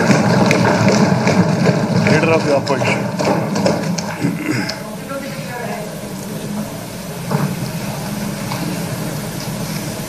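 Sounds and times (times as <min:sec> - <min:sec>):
people thumping wooden desks: 0:00.0 - 0:10.0.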